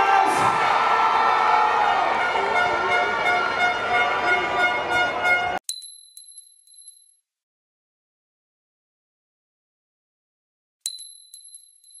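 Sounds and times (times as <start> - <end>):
coin dropping and bouncing: 5.7 - 7.2, 10.9 - 12.0.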